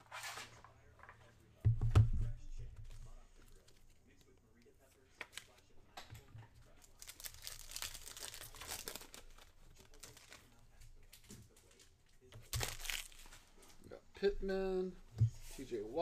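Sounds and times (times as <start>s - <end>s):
foil pack crinkling: 6.6s - 10.6s, 12.5s - 13.7s.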